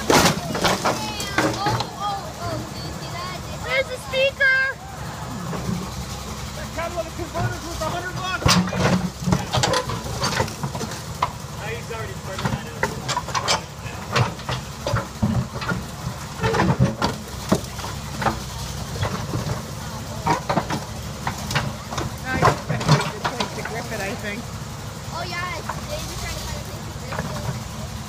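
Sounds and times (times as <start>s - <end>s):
metal crunching and clanking: 0.0s - 4.6s, 5.3s - 28.0s
diesel engine running: 0.0s - 28.0s.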